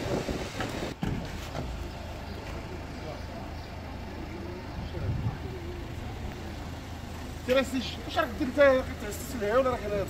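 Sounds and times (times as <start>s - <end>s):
distant voices: 0.0s - 10.0s
low street rumble: 0.0s - 10.0s.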